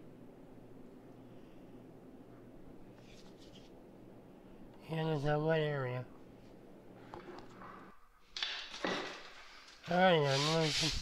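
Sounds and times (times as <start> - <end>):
pole sander rubbing plaster: 10.2 - 11.0.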